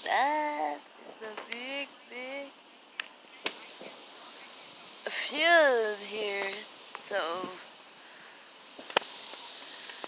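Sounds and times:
wind in the trees: 0:00.0 - 0:10.0.

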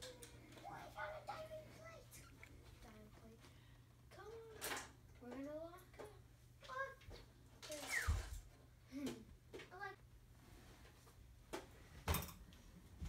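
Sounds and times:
children's voices: 0:00.0 - 0:03.5.

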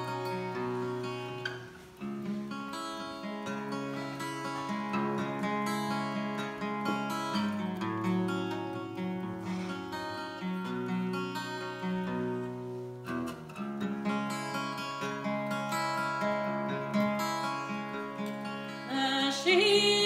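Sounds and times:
acoustic guitar picking chords: 0:00.0 - 0:20.0.

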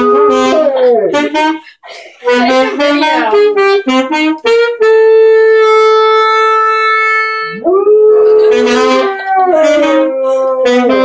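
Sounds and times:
dog howling: 0:00.0 - 0:01.2, 0:07.5 - 0:11.0
saxophone holding a note: 0:00.0 - 0:07.6.

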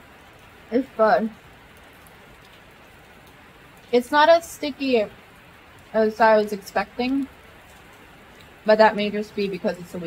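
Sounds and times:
rain on a metal roof: 0:00.0 - 0:10.0.

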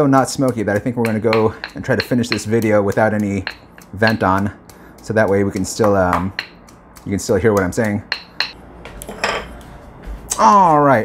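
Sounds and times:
pestle knocking in mortar: 0:00.1 - 0:09.0.

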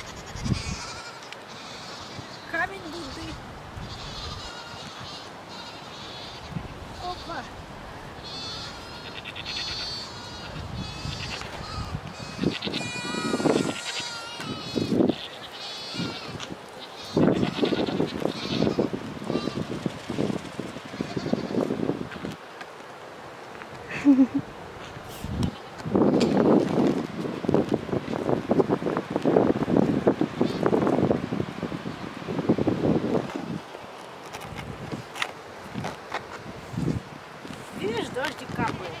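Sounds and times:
goats bleating: 0:00.0 - 0:07.5, 0:08.2 - 0:19.7, 0:20.9 - 0:21.6.

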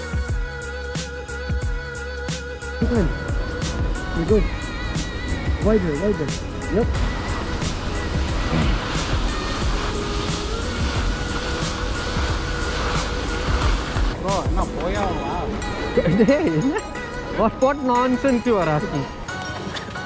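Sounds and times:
background music: 0:00.0 - 0:20.0
voices: 0:02.6 - 0:12.0, 0:14.0 - 0:19.3.

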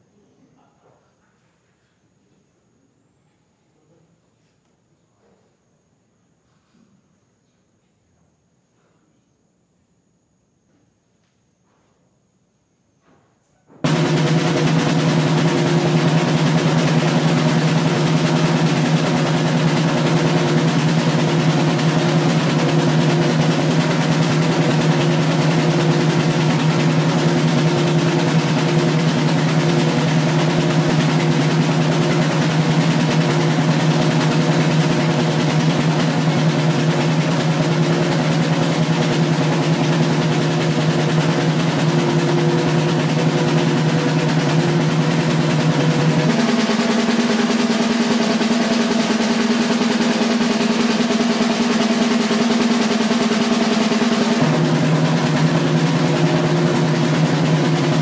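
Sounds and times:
drum roll with sticks: 0:13.8 - 0:58.0.

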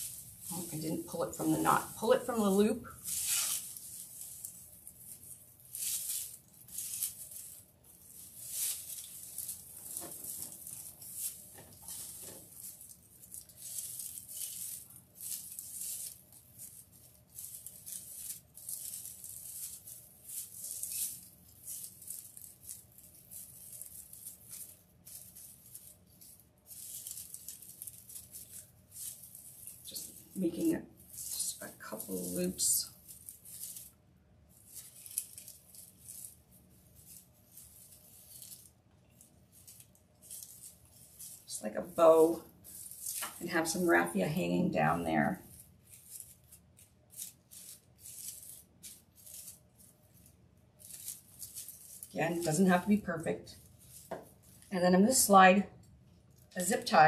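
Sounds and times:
dry raffia rustling: 0:00.0 - 0:57.0.

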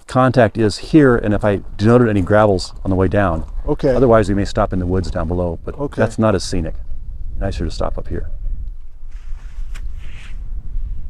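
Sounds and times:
soft rustling hiss: 0:00.1 - 0:11.0
wind buffeting microphone: 0:00.2 - 0:11.0.

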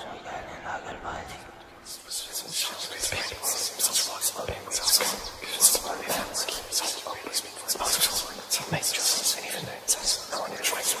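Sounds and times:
person whispering breathily: 0:00.0 - 0:11.0.

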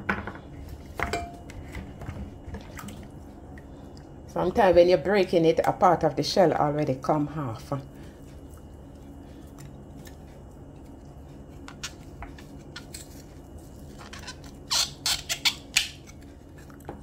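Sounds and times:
steady low hum: 0:00.0 - 0:17.0
knife scraping coconut: 0:12.5 - 0:16.6.

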